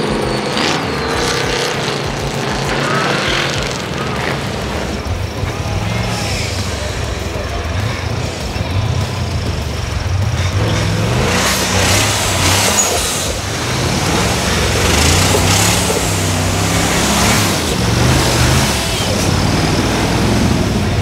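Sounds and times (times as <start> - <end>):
buggy engine revving: 0.0 - 21.0.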